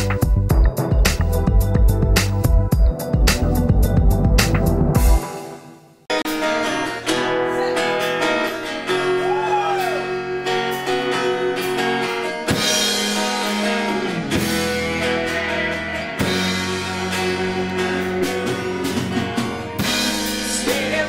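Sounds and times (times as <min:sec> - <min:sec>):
drums: 0:00.0 - 0:06.7, 0:09.2 - 0:21.0
electric guitar: 0:06.1 - 0:21.0
strummed acoustic-electric guitar: 0:06.1 - 0:21.0.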